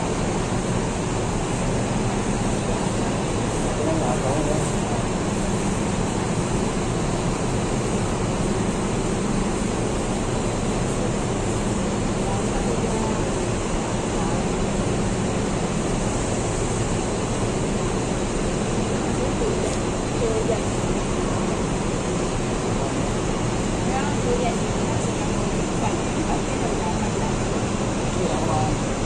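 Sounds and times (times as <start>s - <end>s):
bus terminus background noise: 0.0s - 29.0s
diesel bus engine idling: 0.0s - 29.0s.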